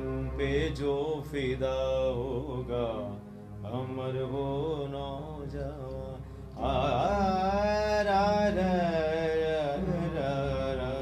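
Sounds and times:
man singing: 0:00.0 - 0:11.0.

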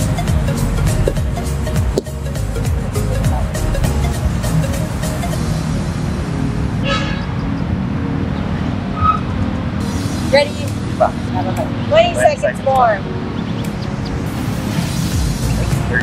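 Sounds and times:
background music: 0:00.0 - 0:16.0
road traffic rumble: 0:00.0 - 0:16.0
car horn tooting: 0:06.8 - 0:07.4.

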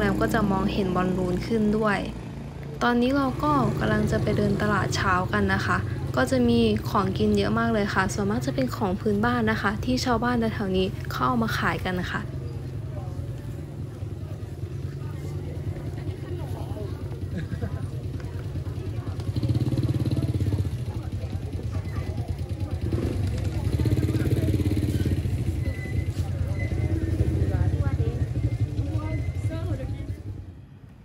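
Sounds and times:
people chattering: 0:00.0 - 0:31.0
small motorbike engines: 0:00.0 - 0:31.0.

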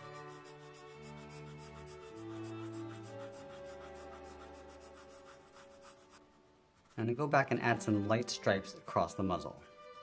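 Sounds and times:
pencil rasping on paper: 0:00.0 - 0:07.3.

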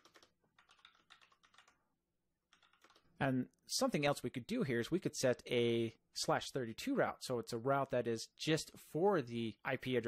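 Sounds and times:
faint keyboard typing: 0:00.0 - 0:03.2.

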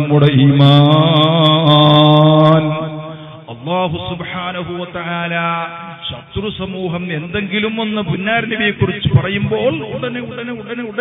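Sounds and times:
man chanting a sustained syllable: 0:00.0 - 0:11.0.

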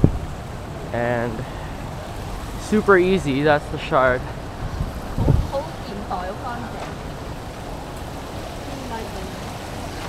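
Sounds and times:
passersby talking: 0:00.6 - 0:10.0.

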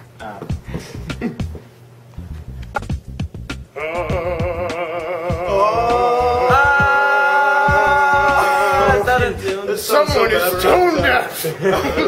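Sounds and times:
beatboxing: 0:00.1 - 0:01.7, 0:02.5 - 0:11.3
person singing long vibrato note: 0:03.7 - 0:09.2.

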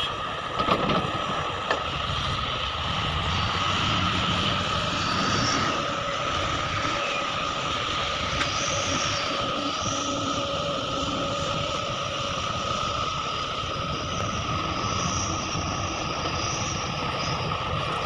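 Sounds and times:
diesel engines low rumble: 0:00.0 - 0:18.0
machinery high whine: 0:00.0 - 0:18.0.

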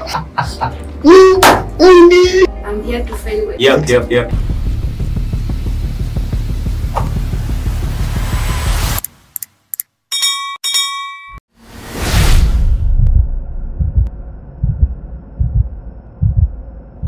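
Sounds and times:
bell dinging: 0:10.1 - 0:11.4
whoosh: 0:11.6 - 0:15.6
deep thumps: 0:12.4 - 0:16.7.

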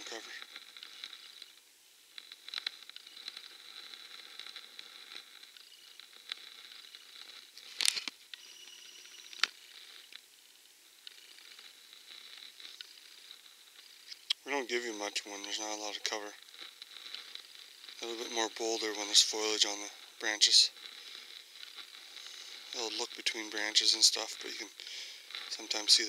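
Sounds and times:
faint steady high whine: 0:00.0 - 0:26.0
camera handling clicks and rustles: 0:05.5 - 0:10.2.

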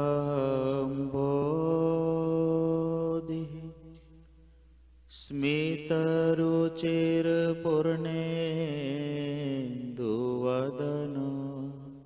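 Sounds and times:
person chanting prayer: 0:00.0 - 0:04.0, 0:05.1 - 0:12.0
steady low hum: 0:00.0 - 0:12.0.

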